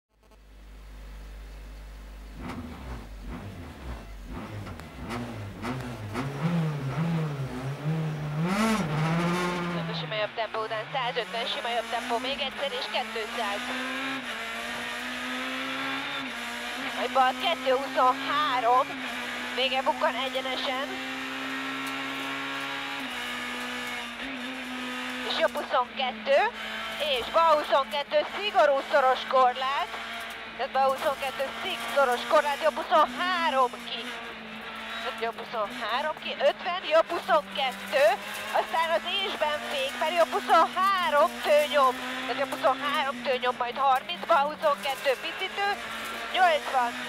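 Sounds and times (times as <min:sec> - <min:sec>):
car engine revving: 0:00.1 - 0:47.0.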